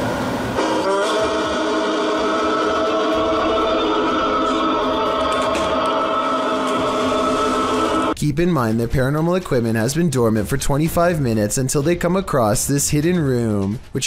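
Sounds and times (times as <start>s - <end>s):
drone of held tones: 0.6s - 8.2s.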